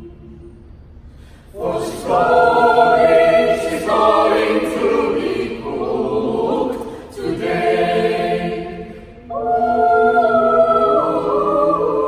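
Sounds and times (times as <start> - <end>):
choir singing in harmony: 0.0 - 0.8, 1.4 - 12.0.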